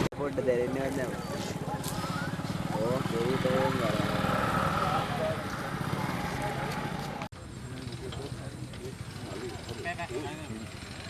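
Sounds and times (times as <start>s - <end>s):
people talking: 0.0s - 7.0s, 7.6s - 10.8s.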